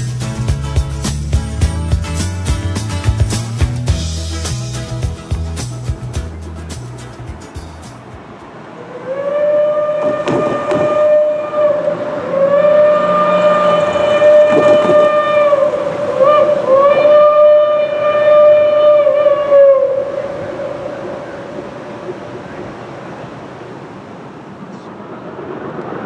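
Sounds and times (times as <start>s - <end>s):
steam locomotive whistle blasts: 8.8s - 21.5s.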